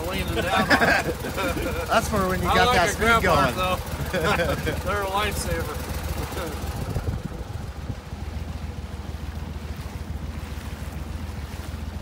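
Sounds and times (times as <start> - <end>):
boat motor droning: 0.0 - 12.0.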